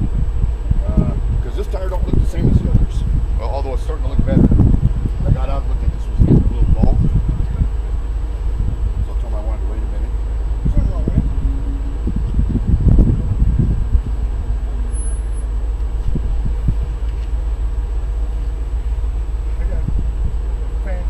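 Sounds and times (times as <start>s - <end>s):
steady low rumble: 0.0s - 21.0s
indistinct voices talking: 5.2s - 15.7s.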